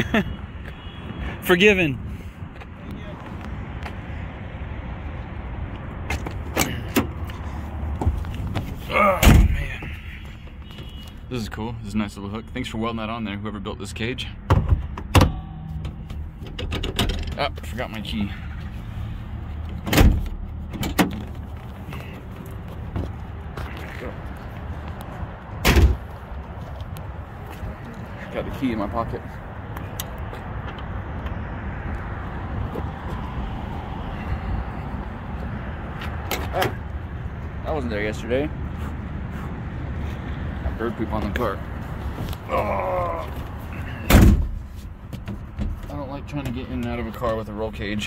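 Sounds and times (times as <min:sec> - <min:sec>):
traffic noise: 0:00.0 - 0:48.0
wind: 0:00.0 - 0:48.0
car door opening and shutting: 0:06.0 - 0:11.0, 0:14.5 - 0:17.6, 0:19.7 - 0:22.1, 0:25.6 - 0:26.1, 0:44.0 - 0:45.8
car door clicks and knocks: 0:14.5 - 0:17.4.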